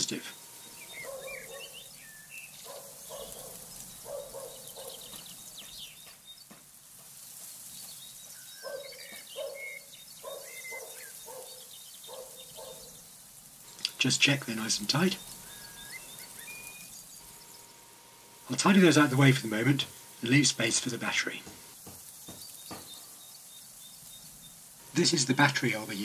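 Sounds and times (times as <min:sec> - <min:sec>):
high chirps: 0:00.0 - 0:06.2, 0:07.2 - 0:26.0.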